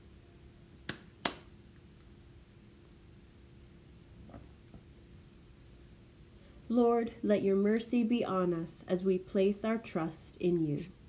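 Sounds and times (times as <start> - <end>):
faint room hum: 0.0 - 11.0.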